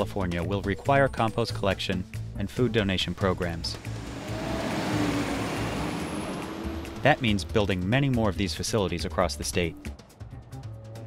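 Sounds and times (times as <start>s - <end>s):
garbage truck driving by: 3.6s - 8.3s.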